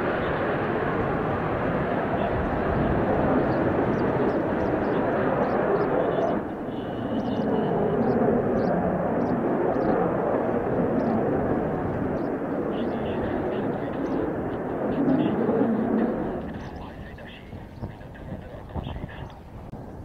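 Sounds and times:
jet engine roar: 0.0s - 20.0s
wind buffeting microphone: 0.0s - 20.0s.

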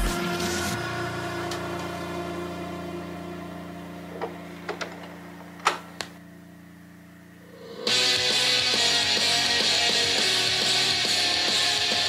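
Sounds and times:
steady hum: 0.0s - 11.4s.

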